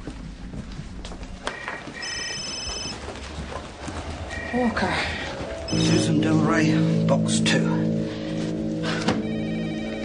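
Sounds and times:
electronic telephone ring: 1.6 - 2.9
low sustained music tones: 4.5 - 10.0.

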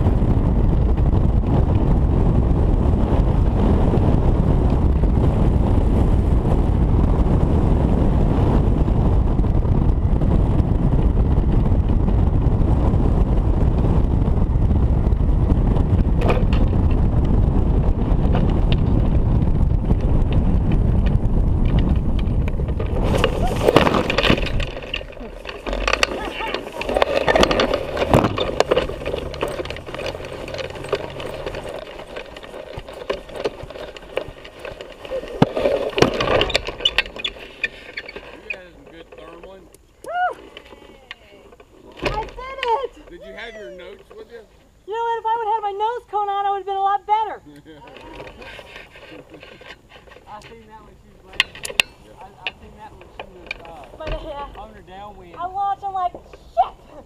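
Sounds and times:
wind rushing over microphone: 0.0 - 57.0
voices: 24.7 - 31.7, 38.2 - 57.0.

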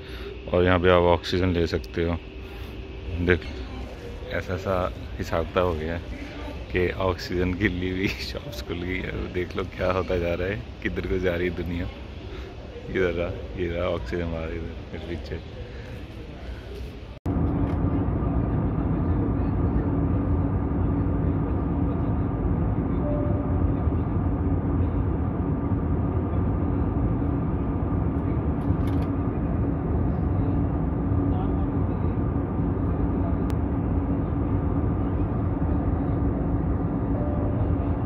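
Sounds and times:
airliner cabin engine rush: 0.0 - 38.0
low hum: 0.0 - 38.0.

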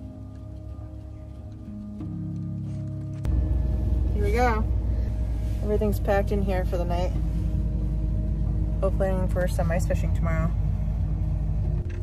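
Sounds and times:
background music with held tones: 0.0 - 12.0
van engine rumbling: 0.0 - 12.0.

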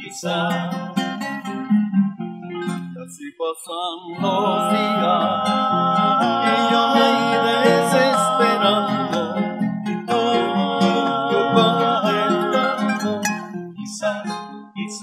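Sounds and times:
men singing with vibrato: 0.0 - 0.8, 3.4 - 15.0
acoustic bass guitar: 0.0 - 3.2, 4.1 - 15.0
plucked acoustic guitars: 0.0 - 3.2, 4.2 - 15.0.

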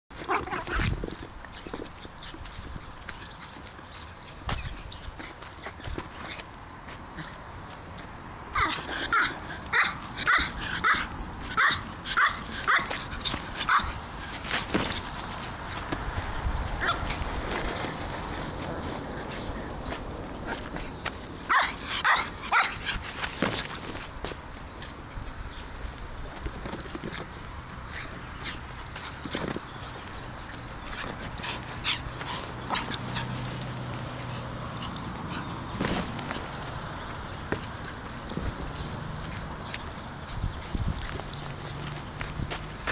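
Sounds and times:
paws and ball scuffing on earth: 0.2 - 42.9
small dog barking: 8.6 - 12.9, 21.5 - 22.8.

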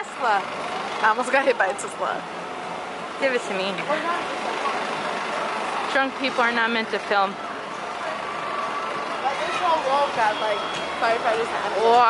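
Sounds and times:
van engine running: 0.0 - 10.2
slow-moving traffic: 0.0 - 12.0.

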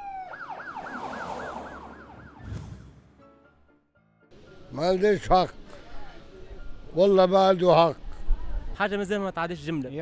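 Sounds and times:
police siren yelping: 0.0 - 2.5.

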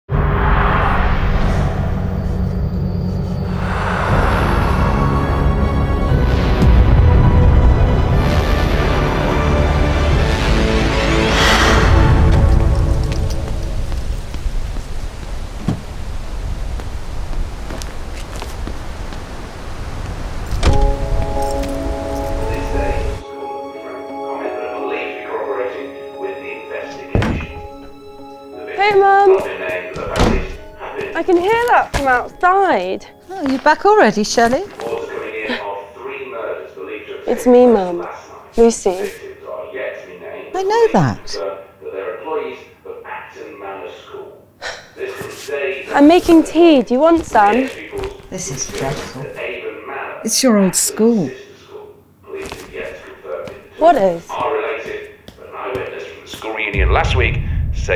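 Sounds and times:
whooshing swells: 0.1 - 6.7, 10.7 - 14.1, 56.8 - 57.9
outdoor ambience: 0.1 - 8.3, 9.0 - 23.2, 51.3 - 57.9
low steady drone: 0.1 - 17.2, 19.4 - 28.8
heavy thunk: 27.1 - 27.7, 30.0 - 30.6.

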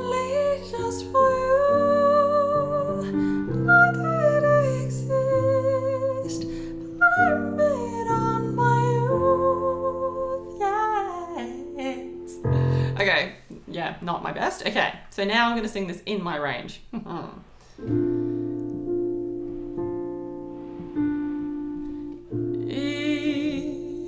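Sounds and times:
woman singing a ballad: 0.0 - 13.0, 22.5 - 24.0
digital piano chords: 0.0 - 13.4, 17.8 - 24.0.

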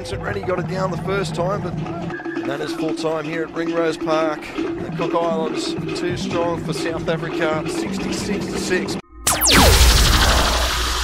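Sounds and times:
deep bass boom: 9.3 - 11.0.

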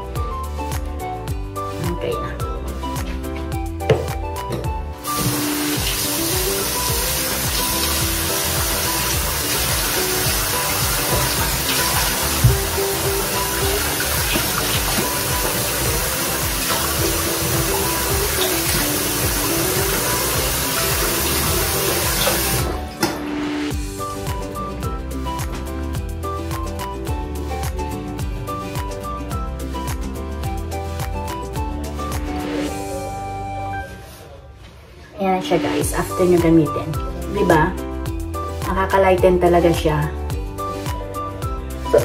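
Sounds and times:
background music: 0.0 - 42.0
tap water running into sink: 5.0 - 22.8.

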